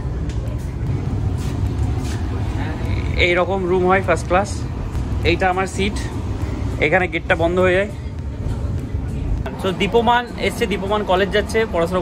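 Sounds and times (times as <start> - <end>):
train carriage rumbling: 0.0 - 12.0
ventilation hum: 0.0 - 12.0.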